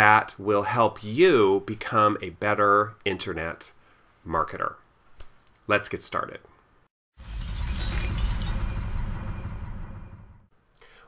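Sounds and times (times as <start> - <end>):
glass shattering crash: 7.2 - 10.2
deep low rumble: 7.3 - 10.5.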